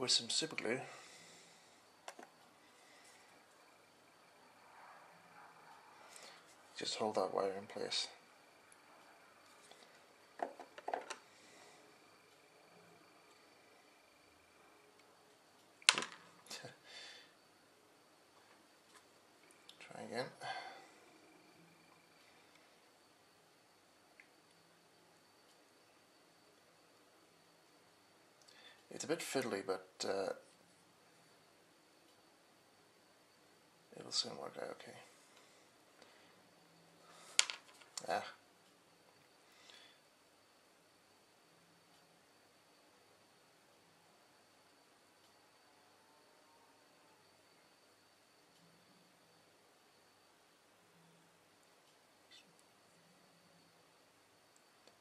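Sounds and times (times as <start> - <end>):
small clicks and taps: 2.0 - 2.4.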